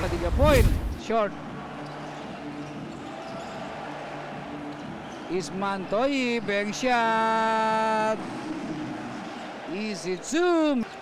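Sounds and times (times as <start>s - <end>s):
faint arena background: 0.0s - 11.0s.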